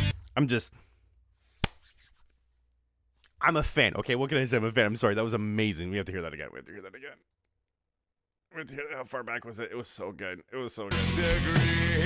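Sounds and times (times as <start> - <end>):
sharp clap or knock: 1.6 - 1.8.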